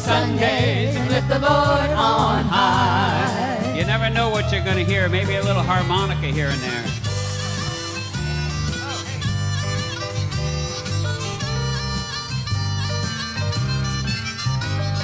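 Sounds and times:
band backing: 0.0s - 15.0s
harmonica playing: 0.0s - 15.0s
rhythmic bass line: 0.0s - 15.0s.

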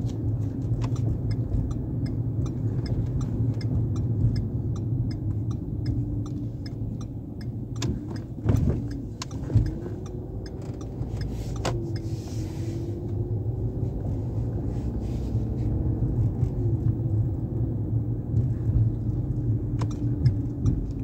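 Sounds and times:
car engine and road rumble: 0.0s - 21.0s.

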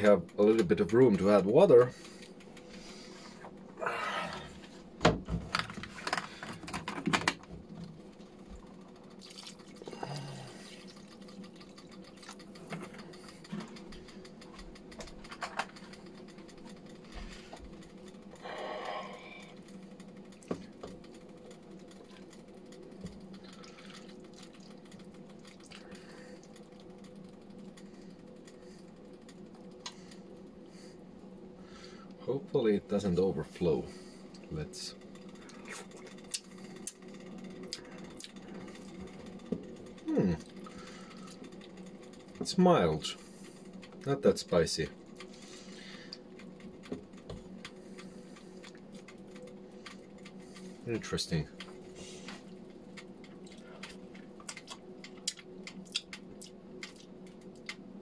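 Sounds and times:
steady low hum: 0.0s - 58.0s
water pouring into a pot: 9.2s - 9.8s.

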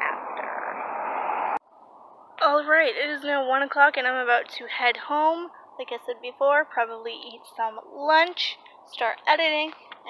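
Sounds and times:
road traffic rushing: 0.0s - 3.1s
quiet outdoor background: 0.0s - 10.0s.

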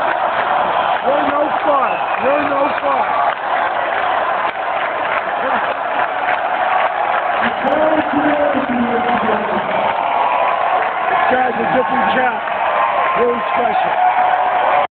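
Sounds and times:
crowd cheering and applauding: 0.0s - 14.9s.

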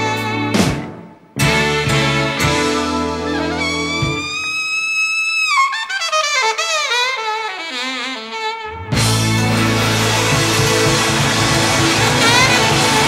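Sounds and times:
alto saxophone cadenza: 0.0s - 13.0s.

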